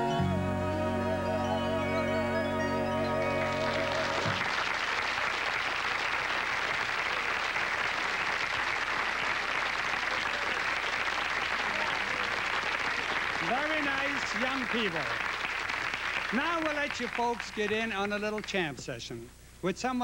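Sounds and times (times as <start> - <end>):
studio audience applauding: 3.2 - 18.7
man speaking: 13.4 - 15.2, 16.3 - 20.0.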